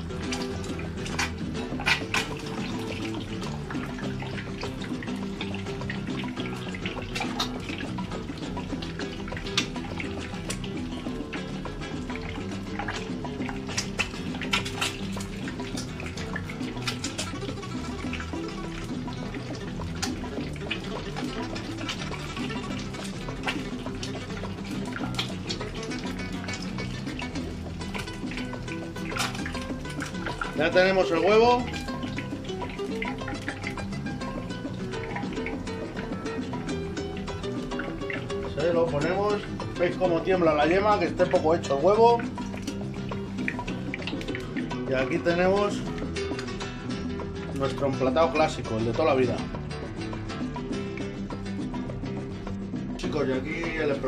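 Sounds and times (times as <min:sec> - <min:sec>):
egg frying in hot oil: 0:00.0 - 0:47.8
background music: 0:00.0 - 0:54.0.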